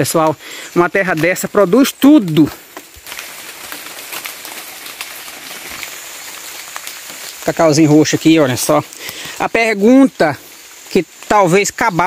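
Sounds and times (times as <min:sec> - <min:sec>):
light rain pattering on leaves: 0:00.0 - 0:12.0.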